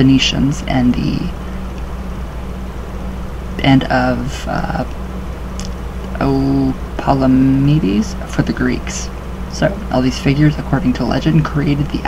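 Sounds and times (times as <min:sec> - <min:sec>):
steady low hum with flutter: 0:00.0 - 0:12.0.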